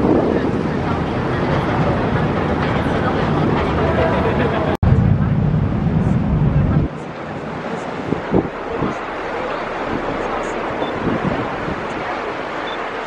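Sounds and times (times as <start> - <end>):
deep heavy rumble: 0.0 - 13.0
ferry engine running: 0.0 - 13.0
wind on microphone: 0.0 - 13.0.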